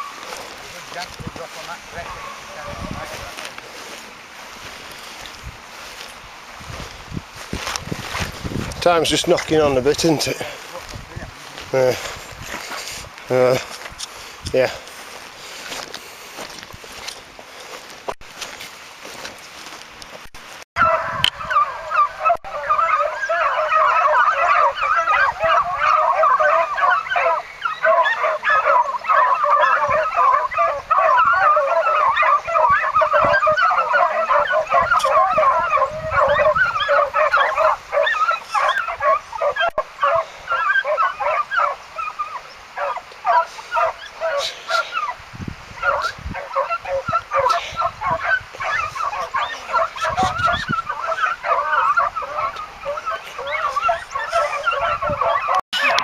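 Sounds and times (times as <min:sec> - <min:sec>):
hounds baying: 0:00.0 - 0:08.2, 0:20.8 - 0:56.0.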